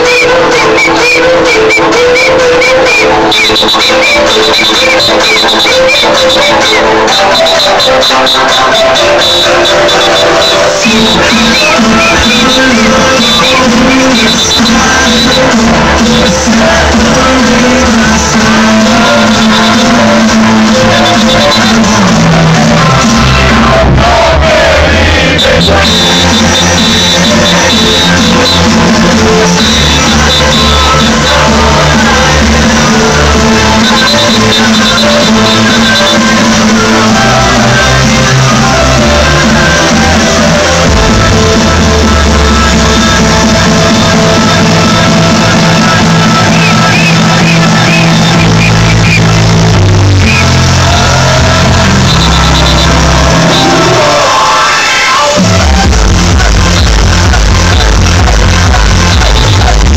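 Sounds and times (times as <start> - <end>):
loud dance music with heavy bass: 0.0 - 59.9.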